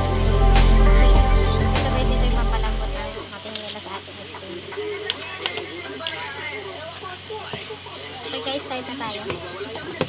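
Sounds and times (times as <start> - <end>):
person talking: 0.8 - 6.2.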